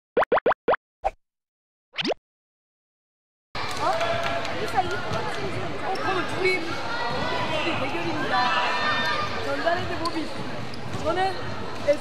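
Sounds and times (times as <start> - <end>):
cartoon rising pops: 0.2 - 1.2, 2.0 - 2.2.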